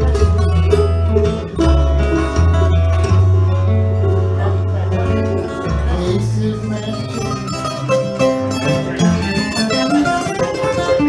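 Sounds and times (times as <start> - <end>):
acoustic guitar picking: 0.0 - 11.0
mandolin picking: 0.0 - 11.0
plucked double bass: 0.0 - 11.0.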